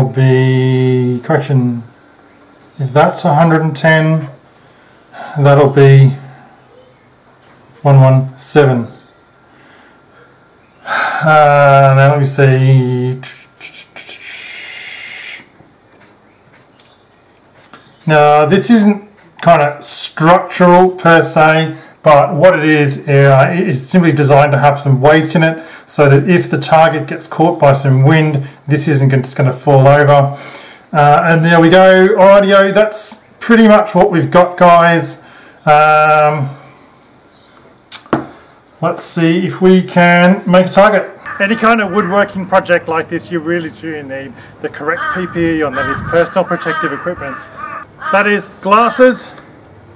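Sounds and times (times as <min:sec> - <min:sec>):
marker scratching on paper: 0:15.9 - 0:16.9, 0:17.5 - 0:17.8
squeaky marker stroke: 0:15.9 - 0:18.1.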